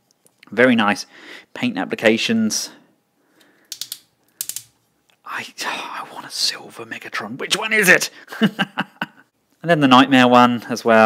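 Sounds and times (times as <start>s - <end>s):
plastic toy parts clicking: 3.7s - 4.8s.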